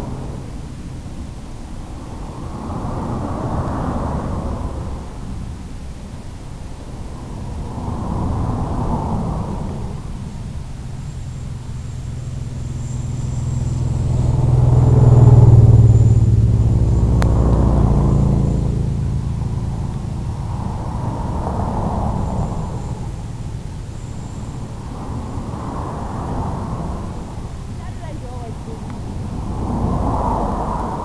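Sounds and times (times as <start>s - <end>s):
rushing wind noise: 0.0s - 31.0s
motor and propeller drone: 7.7s - 31.0s.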